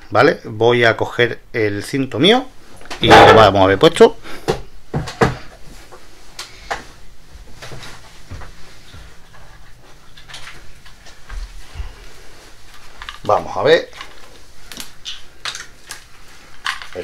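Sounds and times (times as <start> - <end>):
rustling and handling noise: 2.2 - 17.0.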